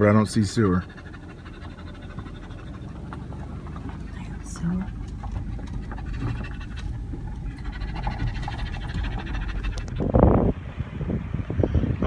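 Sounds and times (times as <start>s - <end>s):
vehicle rumble on gravel road: 0.0s - 12.0s.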